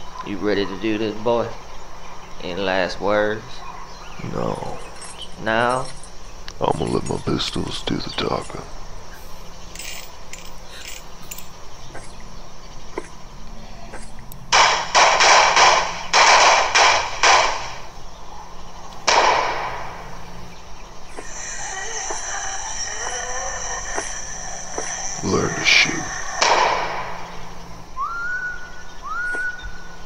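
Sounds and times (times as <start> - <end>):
sustained musical tones: 19.7 - 29.0.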